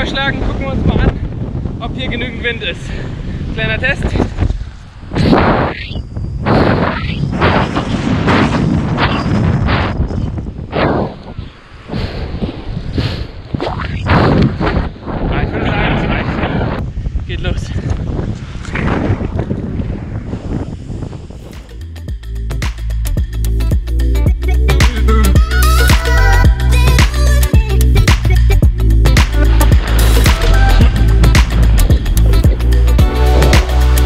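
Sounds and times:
wind buffeting microphone: 0:00.0 - 0:22.2, 0:28.0 - 0:34.0
music with steady beat: 0:21.6 - 0:34.0.

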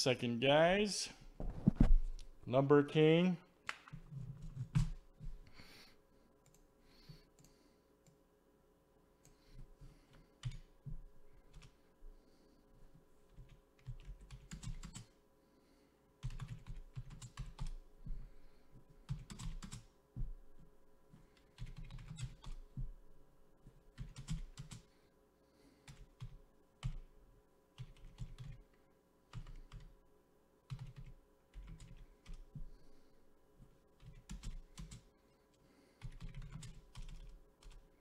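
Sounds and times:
typing on computer keyboard: 0:10.4 - 0:10.7, 0:13.3 - 0:15.1, 0:16.2 - 0:17.8, 0:19.0 - 0:19.9, 0:21.4 - 0:22.6, 0:23.9 - 0:24.9, 0:27.8 - 0:28.6, 0:29.3 - 0:29.9, 0:30.7 - 0:32.5, 0:34.0 - 0:35.1, 0:36.0 - 0:37.8.

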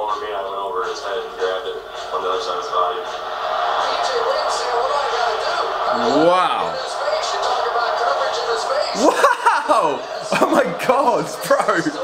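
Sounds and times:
television soundtrack: 0:00.0 - 0:12.0
man talking: 0:05.9 - 0:06.8.

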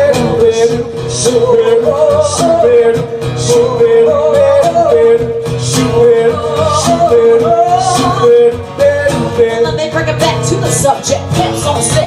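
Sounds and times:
acoustic guitar strumming: 0:00.0 - 0:12.0.

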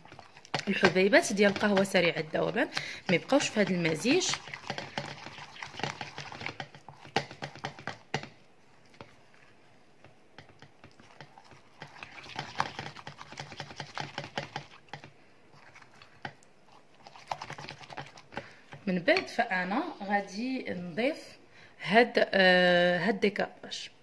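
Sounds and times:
wooden spoon scraping ceramic bowl: 0:00.0 - 0:08.0, 0:10.4 - 0:20.9.

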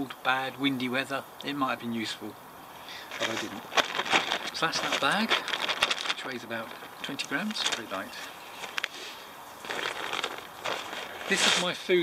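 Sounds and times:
stuff sack crinkling rustle: 0:03.0 - 0:12.0.

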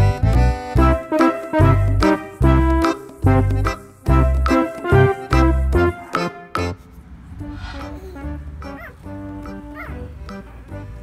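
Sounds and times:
background music: 0:00.0 - 0:11.0
puppy whimpering: 0:07.8 - 0:09.1, 0:09.7 - 0:10.0.

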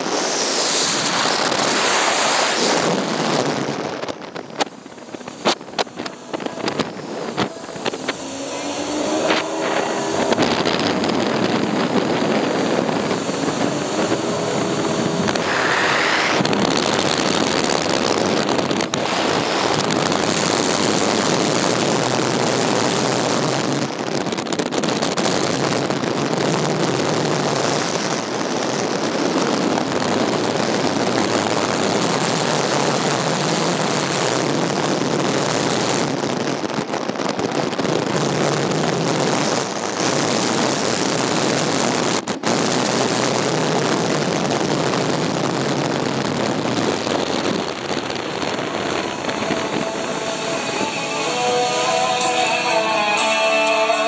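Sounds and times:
rushing water: 0:00.0 - 0:54.0
watercraft engine: 0:00.0 - 0:54.0.

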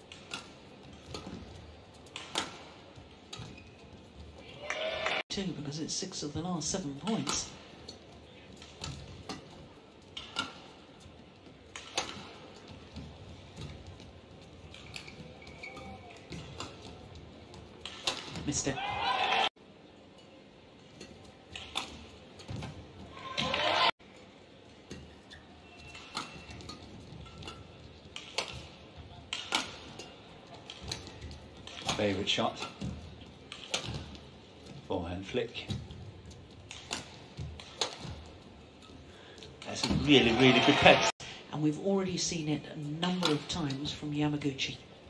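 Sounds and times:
rackets striking shuttlecock: 0:11.7 - 0:12.8, 0:25.8 - 0:28.7, 0:29.3 - 0:32.9
shoe squeaks on court: 0:14.8 - 0:16.2
crowd noise: 0:18.5 - 0:19.5, 0:23.1 - 0:23.9, 0:39.8 - 0:41.1.

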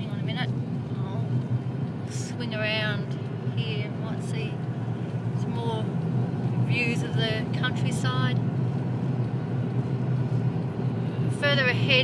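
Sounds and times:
car interior driving rumble: 0:00.0 - 0:12.0.

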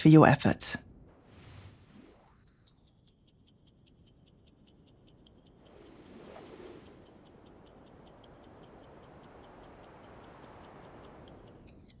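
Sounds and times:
faint steady ticking: 0:00.8 - 0:12.0.

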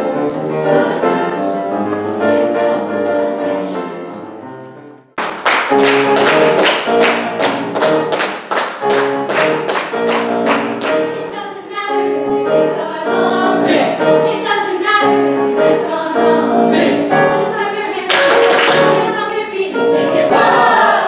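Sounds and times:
choir singing in harmony: 0:00.0 - 0:04.9, 0:10.2 - 0:21.0
people clapping in time: 0:05.2 - 0:11.1, 0:18.1 - 0:19.0.

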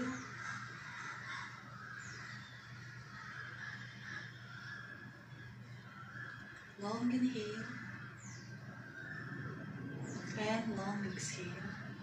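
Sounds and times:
faint bird calls: 0:00.0 - 0:12.0
low steady hum: 0:00.0 - 0:12.0.

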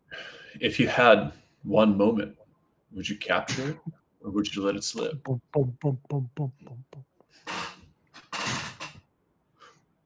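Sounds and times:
man coughing: 0:03.4 - 0:03.9.

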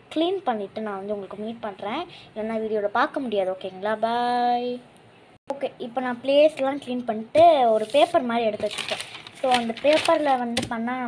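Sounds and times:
woman speaking: 0:05.5 - 0:11.0
paper rustling: 0:07.6 - 0:10.7.

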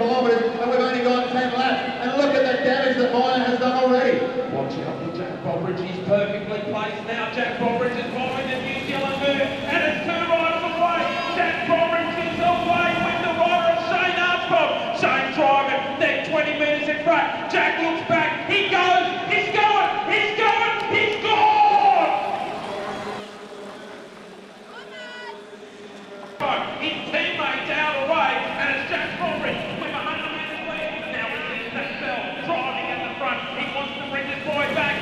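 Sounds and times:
man commentating a race: 0:00.0 - 0:35.0.

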